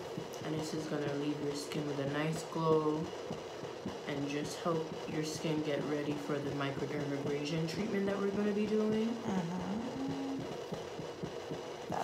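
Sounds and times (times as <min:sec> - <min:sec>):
facial steamer low pulsing: 0:00.0 - 0:12.0
faint hum: 0:00.0 - 0:12.0.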